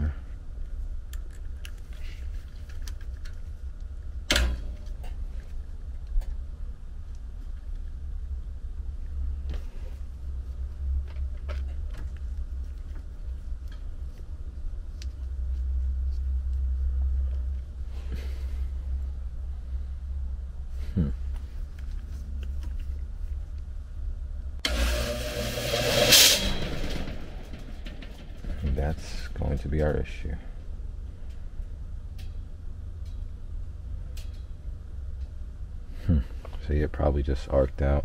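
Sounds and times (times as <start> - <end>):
blower rumbling and vibrating: 0.0 - 37.4.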